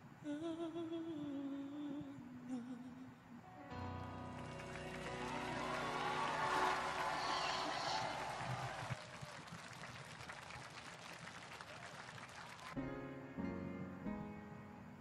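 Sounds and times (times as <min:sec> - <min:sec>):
ballad closing music: 0:03.7 - 0:07.0
sung or cheered note: 0:03.7 - 0:08.3
audience applauding: 0:03.7 - 0:12.8.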